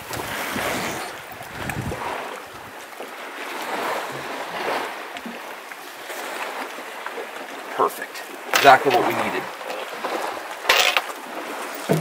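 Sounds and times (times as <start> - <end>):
wind rumbling on microphone: 0.0 - 2.8
sea water lapping around boat: 0.0 - 12.0.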